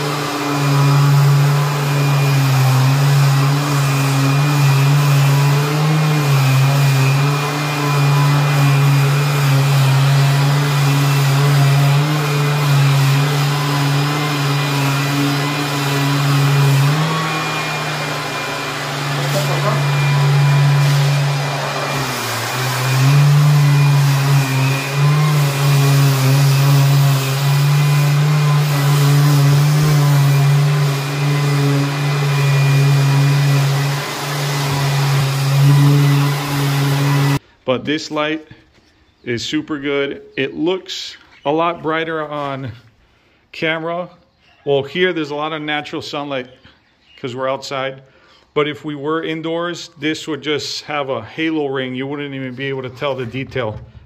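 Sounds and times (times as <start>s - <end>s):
drywall sander motor hum: 0.0s - 37.4s.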